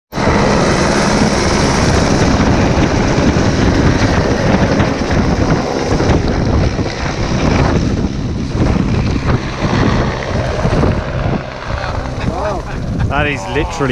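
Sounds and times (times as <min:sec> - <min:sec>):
helicopter taking off: 0:00.1 - 0:13.9
wind buffeting on microphone: 0:00.1 - 0:13.9.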